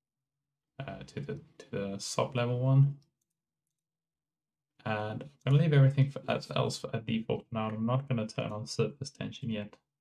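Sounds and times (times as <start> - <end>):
man speaking: 0.8 - 3.0, 4.8 - 9.8.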